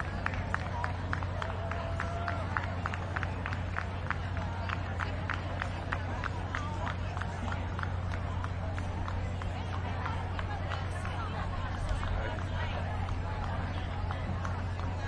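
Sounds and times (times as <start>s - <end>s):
murmur of crowd: 0.0s - 15.0s.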